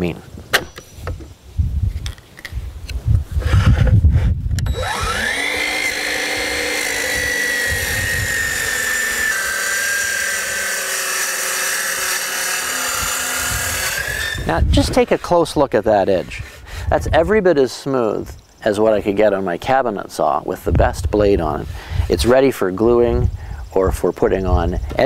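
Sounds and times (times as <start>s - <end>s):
track saw motor whine: 4.6s - 14.5s.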